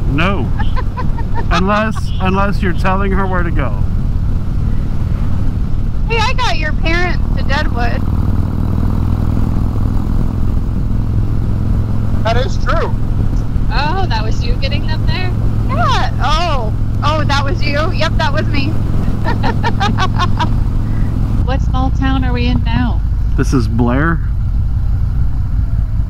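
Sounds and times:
voices talking: 0.0 - 3.9, 6.1 - 8.0, 12.1 - 24.3
motorcycle engine cruising: 0.0 - 26.0
riding wind: 0.0 - 26.0.

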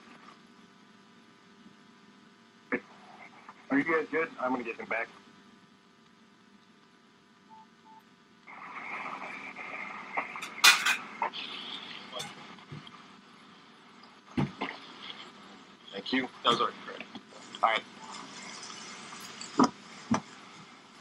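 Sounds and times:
faint hum: 0.0 - 21.0
steady hiss: 8.2 - 21.0.

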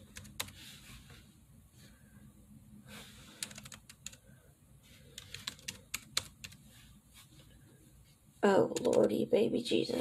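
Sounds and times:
keyboard typing taps: 5.2 - 6.6, 8.7 - 9.1.

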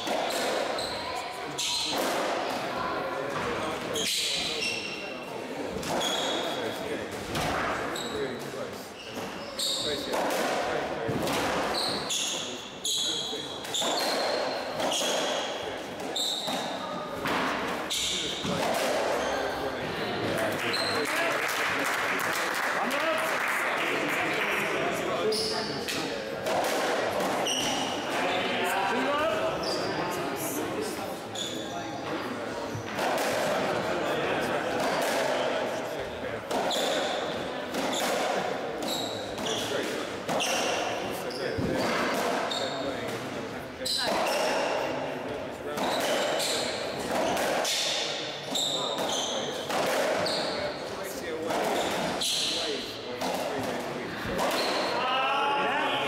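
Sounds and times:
shoes squeaking on wooden floor: 5.8 - 6.6, 7.9 - 10.0, 11.7 - 16.8, 20.7 - 21.1, 27.2 - 28.4, 38.8 - 42.9, 48.5 - 50.8, 54.4 - 55.0.

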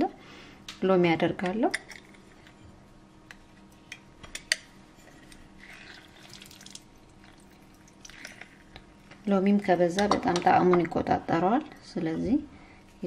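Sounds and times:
juice dripping into glass dish: 5.6 - 8.8.

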